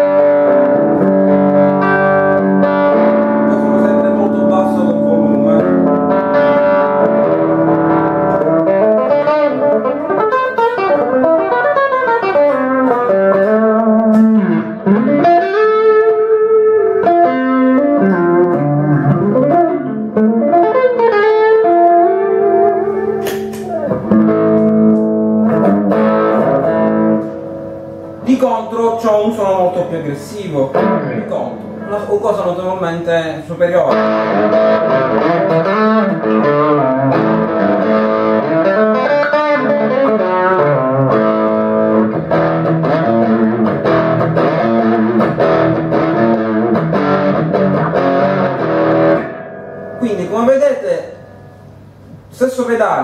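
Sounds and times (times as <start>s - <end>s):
distorted electric guitar lead: 0.0s - 52.3s.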